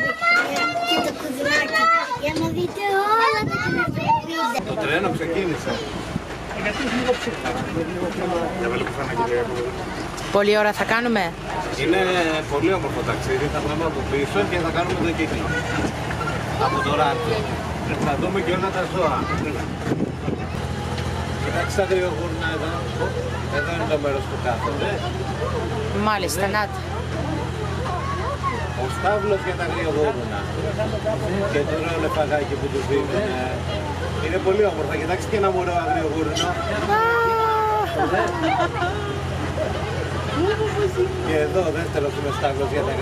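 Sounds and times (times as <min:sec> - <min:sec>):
train engine humming: 0:13.7 - 0:43.0.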